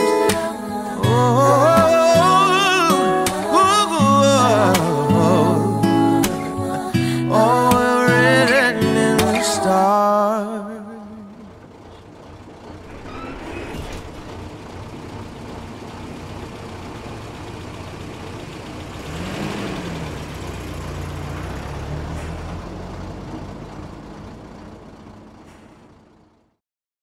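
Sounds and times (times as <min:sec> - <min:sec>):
traffic rumble: 0:00.0 - 0:26.6
vehicle passing: 0:18.7 - 0:26.3.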